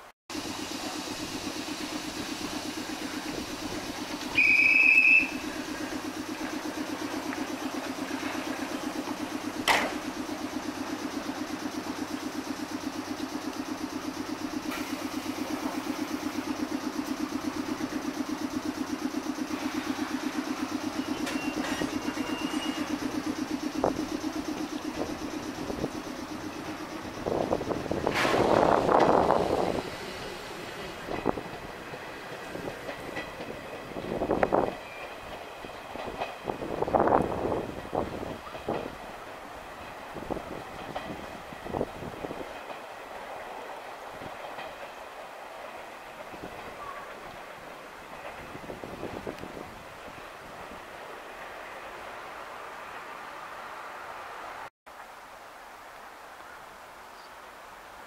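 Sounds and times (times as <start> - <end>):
electric train humming: 0.0 - 54.7
rush of noise: 0.3 - 35.0
short high steady tone: 0.4 - 6.6
sharp click: 9.6 - 10.0.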